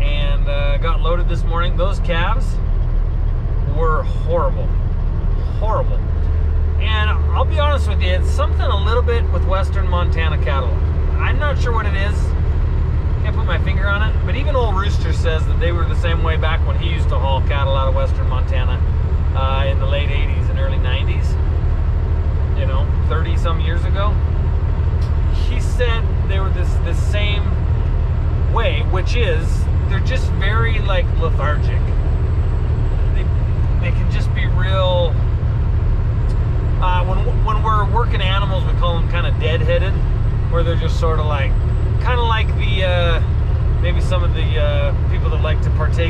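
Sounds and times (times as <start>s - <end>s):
man talking: 0.0s - 2.6s, 3.6s - 4.8s, 5.4s - 6.1s, 6.8s - 12.4s, 13.2s - 21.4s, 22.5s - 24.2s, 25.2s - 27.6s, 28.5s - 32.0s, 33.1s - 35.2s, 36.8s - 46.0s
truck cab drone at highway speed: 0.0s - 46.0s.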